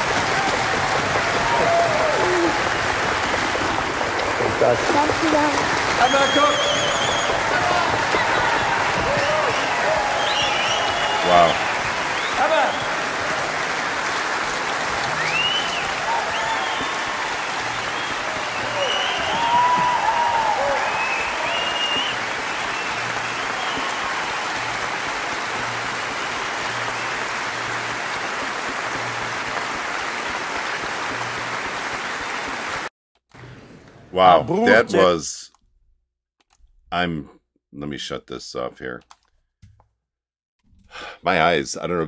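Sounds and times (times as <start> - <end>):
audience applauding: 0.0 - 32.9, 34.3 - 35.2
voices over clapping: 0.0 - 32.9.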